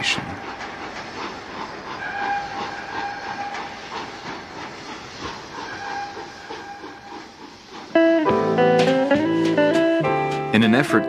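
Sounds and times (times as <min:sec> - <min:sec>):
train wheels clickety-clack: 0:00.0 - 0:11.0
steam train whistle: 0:02.0 - 0:03.8, 0:05.6 - 0:07.2.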